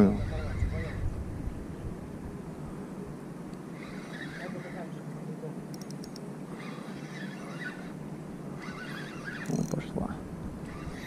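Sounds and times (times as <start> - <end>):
wind rumble: 0.0 - 3.2
spinning reel cranking: 8.6 - 9.8, 10.7 - 11.0.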